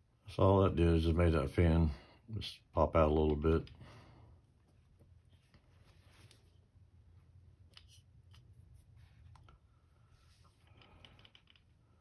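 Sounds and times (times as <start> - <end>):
low steady hum: 0.0 - 12.0
small metal clicks and scrapes: 10.6 - 11.8.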